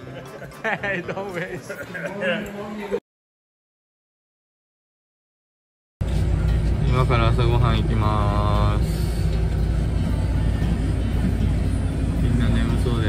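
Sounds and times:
bus engine rumble: 6.0 - 13.0
passengers' voices: 6.0 - 13.0.

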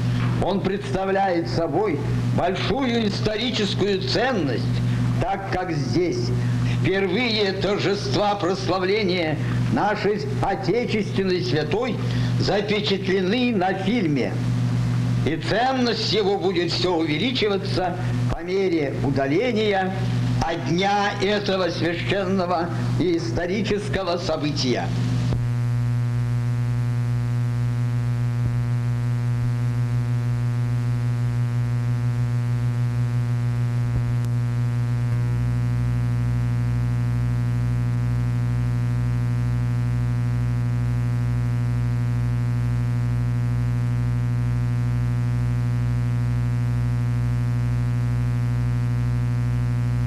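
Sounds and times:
loud electrical mains hum: 0.0 - 50.0.

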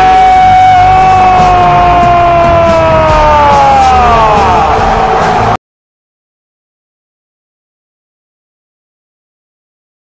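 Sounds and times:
commentator shouting goal cry: 0.0 - 5.6
stadium crowd noise: 0.0 - 5.6.

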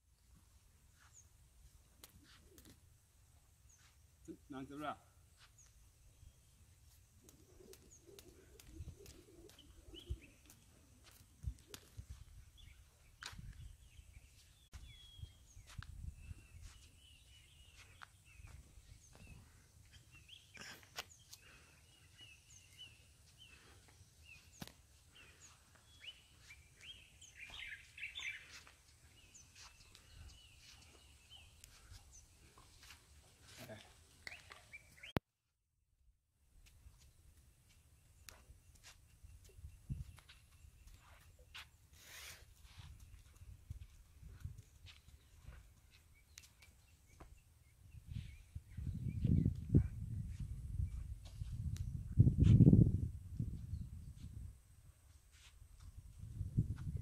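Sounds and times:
faint birds chirping: 0.0 - 35.2, 36.5 - 57.0.

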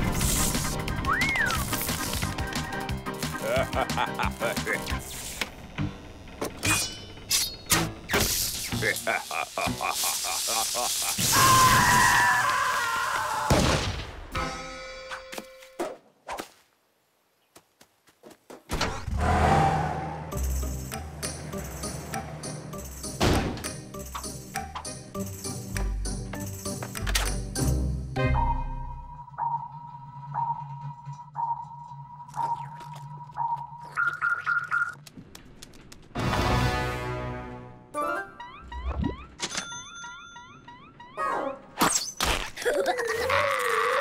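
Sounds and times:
cartoon character screaming: 11.1 - 13.6, 43.0 - 44.0.

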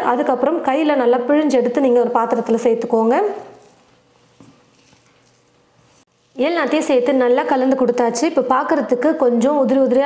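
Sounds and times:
hand mixing food in bowl: 3.4 - 6.9.

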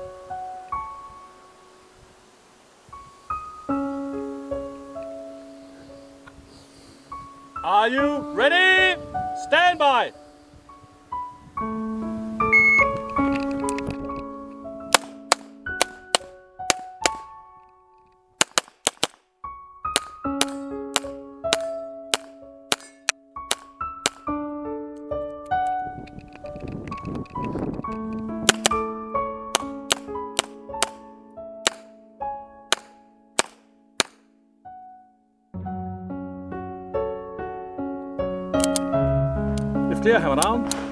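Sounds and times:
background music with ringing notes: 0.0 - 2.0, 3.0 - 18.4, 19.4 - 40.9
pistol shots: 14.9 - 17.3, 18.4 - 19.2, 19.9 - 24.3, 28.4 - 28.8, 29.5 - 31.0, 31.6 - 31.9, 32.7 - 34.2.

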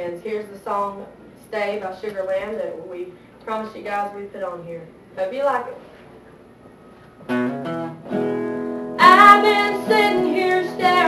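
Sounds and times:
acoustic guitar chord strummed: 7.3 - 11.0.

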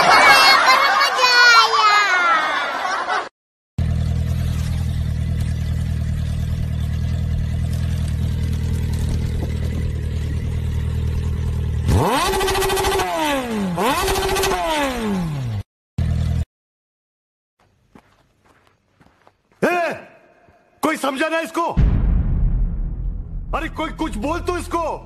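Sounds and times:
motorcycle engine idling: 3.8 - 13.0
motorcycle engine revving: 3.8 - 16.5.

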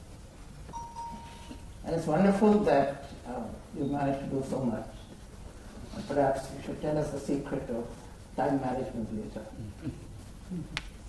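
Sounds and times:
quiet steady beep: 0.7 - 1.8.

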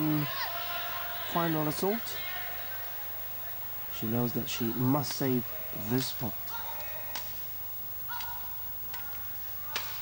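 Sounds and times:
low hum of arena: 0.0 - 10.0
rackets hitting shuttlecock: 8.2 - 10.0.

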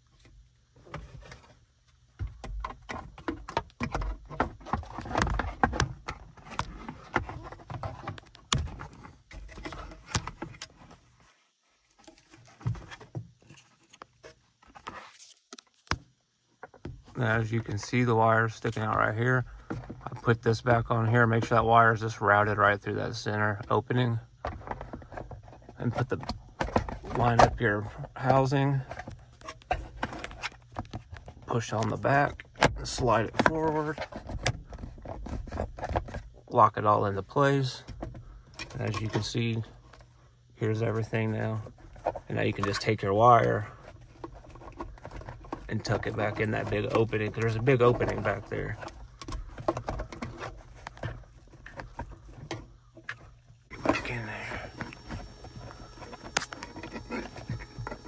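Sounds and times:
low steady hum: 0.0 - 58.0.

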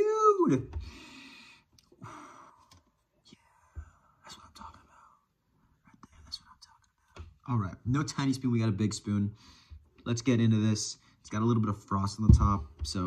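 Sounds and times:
person breathing softly: 0.8 - 5.3, 9.3 - 9.9.

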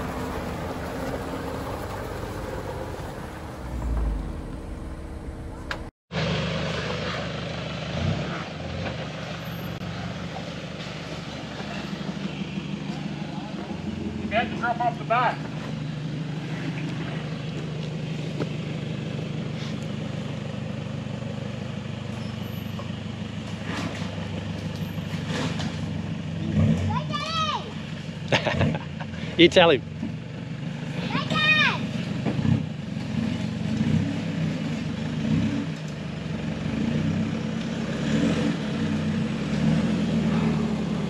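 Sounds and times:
engine running at low revs: 0.0 - 41.0.

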